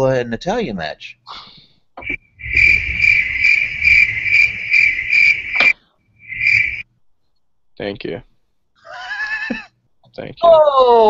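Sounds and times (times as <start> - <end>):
cricket chirping: 2.0 - 6.9.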